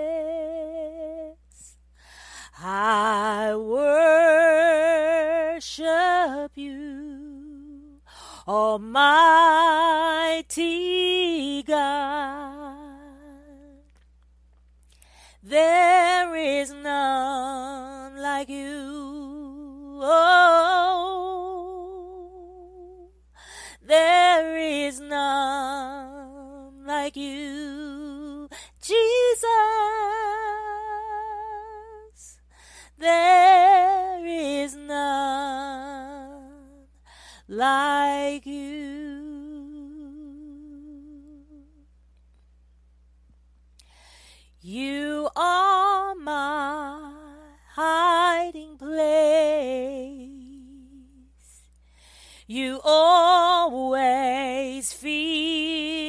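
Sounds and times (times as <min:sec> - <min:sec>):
faint low hum: 0:00.0 - 0:56.0.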